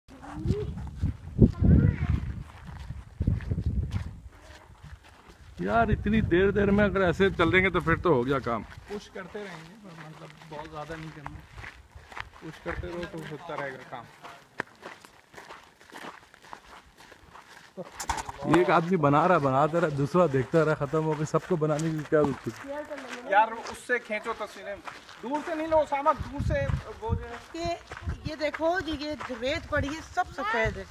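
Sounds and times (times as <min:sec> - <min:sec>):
wind buffeting microphone: 0:00.1 - 0:09.0, 0:25.6 - 0:30.9
footsteps on sandy ground: 0:00.1 - 0:30.9.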